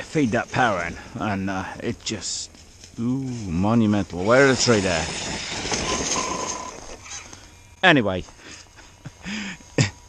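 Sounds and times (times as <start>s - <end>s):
tyres rushing over grass: 0.0s - 7.1s
faint electric motor whine: 0.0s - 10.0s.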